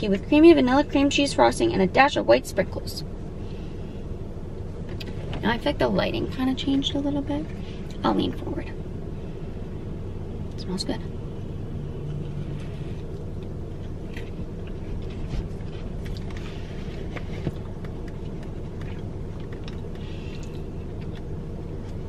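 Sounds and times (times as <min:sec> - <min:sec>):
car cabin hum: 0:00.0 - 0:22.0
chewing a cookie: 0:12.0 - 0:22.0.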